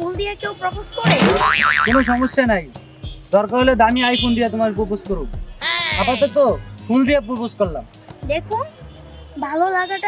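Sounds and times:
cartoon boing twang: 1.1s - 2.4s.

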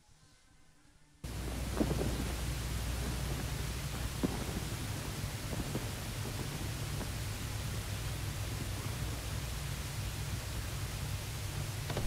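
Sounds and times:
tape hiss: 0.0s - 12.0s
low hum: 1.2s - 12.0s
soft crackles: 1.2s - 12.0s.

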